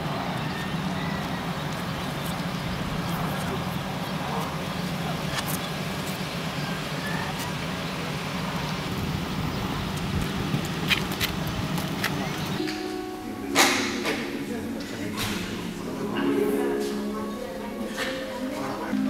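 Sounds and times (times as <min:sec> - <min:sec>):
faint voices: 0:00.0 - 0:08.9, 0:11.8 - 0:19.0
car engine idling: 0:00.0 - 0:19.0.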